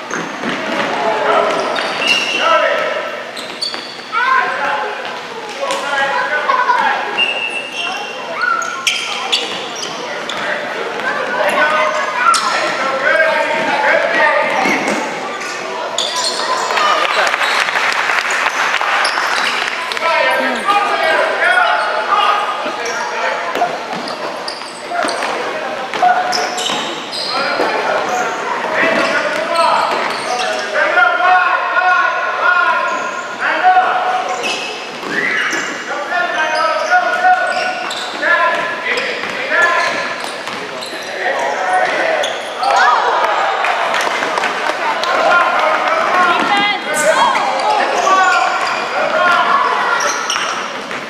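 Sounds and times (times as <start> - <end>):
voices calling out: 0.8 - 51.0.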